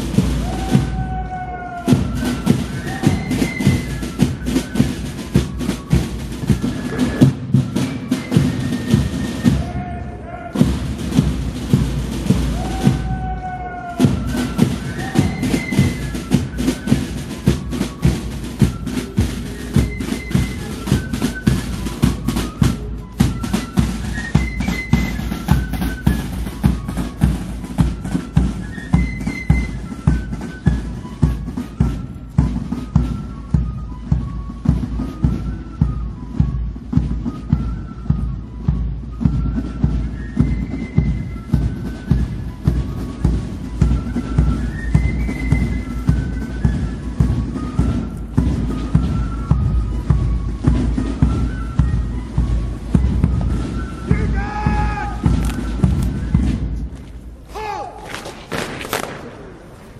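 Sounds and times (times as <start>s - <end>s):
side drums: 0.0s - 59.9s.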